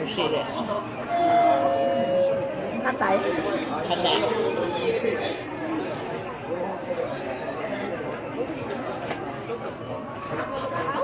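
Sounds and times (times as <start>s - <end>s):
restaurant chatter: 0.0s - 11.0s.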